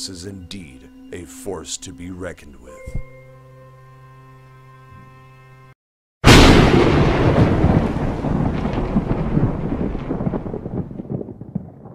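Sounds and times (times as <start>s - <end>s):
rumbling thunder-like boom: 6.2s - 11.9s
scattered crackles: 7.4s - 11.9s.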